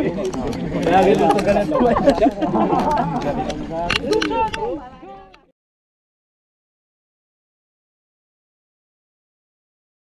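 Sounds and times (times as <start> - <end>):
people talking: 0.0 - 5.5.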